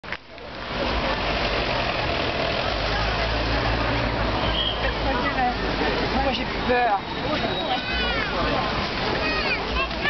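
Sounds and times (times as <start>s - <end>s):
steady traffic noise: 0.0s - 10.0s
people's voices: 0.2s - 10.0s
car passing: 0.4s - 10.0s.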